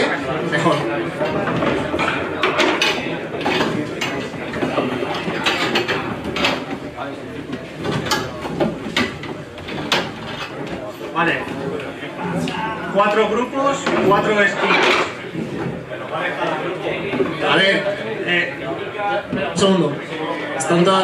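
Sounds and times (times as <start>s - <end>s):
plastic chairs clattering: 0.0s - 16.0s
crowd murmur: 0.0s - 21.0s.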